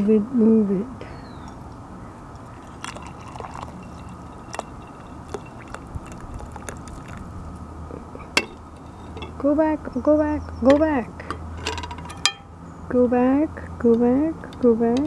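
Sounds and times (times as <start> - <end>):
tea pouring into a glass cup: 2.4 - 7.4.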